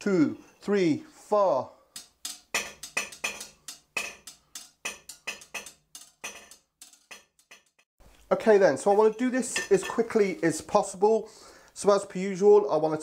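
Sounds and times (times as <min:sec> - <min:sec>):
knife honed on steel: 0:02.0 - 0:07.8.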